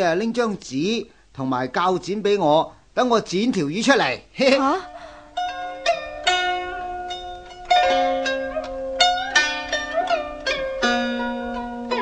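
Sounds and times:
plucked zither notes: 3.8s - 12.0s.

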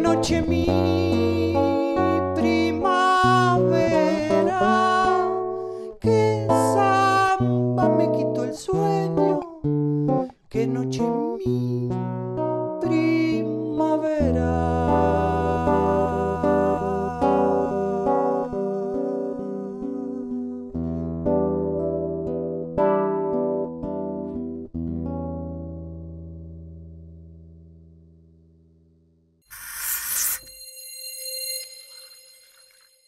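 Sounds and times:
fingerpicked acoustic guitar: 0.0s - 28.8s
bright whoosh: 29.5s - 33.0s
ringing chime tones: 29.5s - 33.0s.

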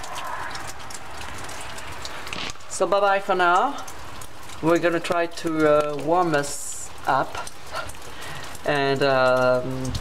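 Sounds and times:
low rumble of wind: 0.0s - 5.8s, 9.6s - 10.0s
steady rain hissing: 0.0s - 10.0s.

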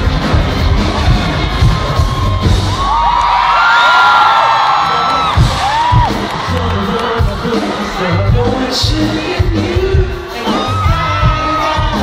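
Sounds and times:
hip-hop music with heavy bass: 0.0s - 3.0s, 4.7s - 12.0s
crowd screaming and whooping: 0.0s - 12.0s.

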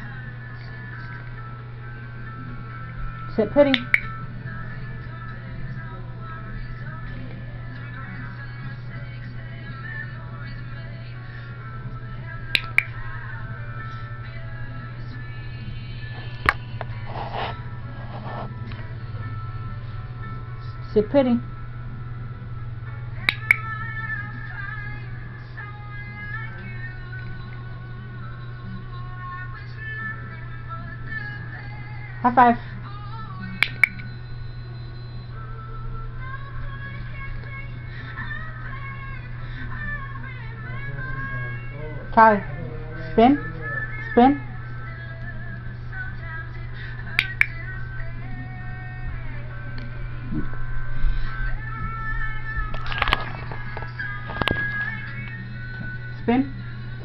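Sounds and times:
background music with held notes: 0.0s - 57.0s.

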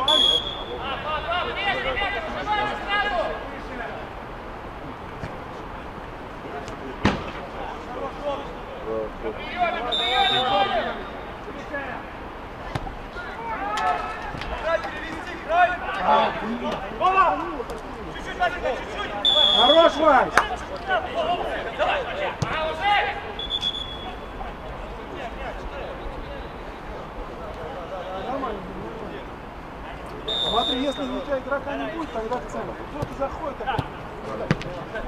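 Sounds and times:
referee's whistle blasts: 0.0s - 1.3s, 9.9s - 11.3s, 19.2s - 20.0s, 23.4s - 24.3s, 30.3s - 31.3s
players shouting: 0.0s - 4.2s, 5.8s - 27.0s
ball being kicked: 33.0s - 34.8s.

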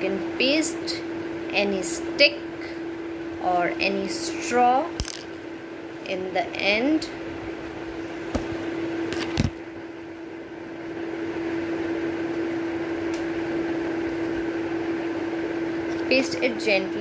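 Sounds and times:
appliance electric hum: 0.0s - 17.0s.

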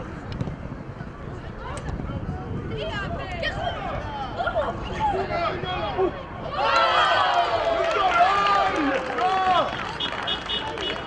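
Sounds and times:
people shouting and cheering: 3.0s - 11.0s
sharp claps: 8.8s - 11.0s.

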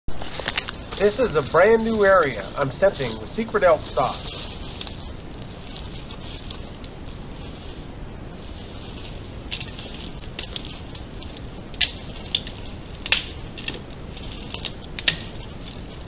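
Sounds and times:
steady hiss: 0.1s - 16.0s.

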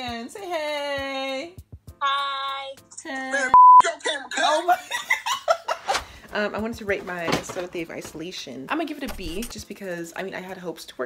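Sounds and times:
censor bleep tone: 3.5s - 3.8s.

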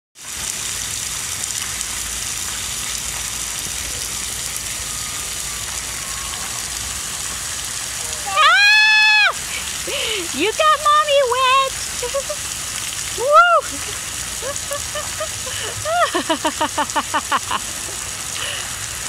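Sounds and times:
water jet spraying on pavement: 0.2s - 19.0s
person shrieking: 8.0s - 9.4s.

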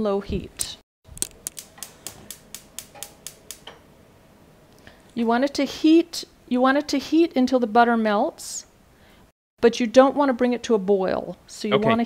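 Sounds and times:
gas stove igniter clicking: 1.2s - 3.9s.

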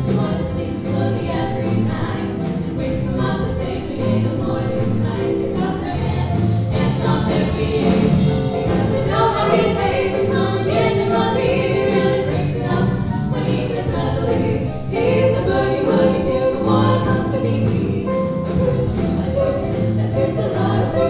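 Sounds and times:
drum kit: 0.0s - 21.0s
women singing in harmony: 0.0s - 21.0s.

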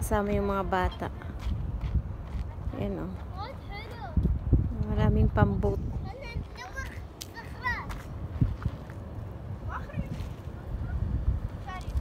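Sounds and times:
children's voices calling out: 6.0s - 8.2s.

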